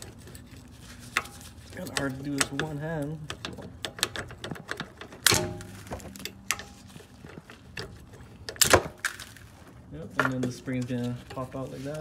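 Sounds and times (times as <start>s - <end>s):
metal clicking and tapping: 1.1s - 8.8s.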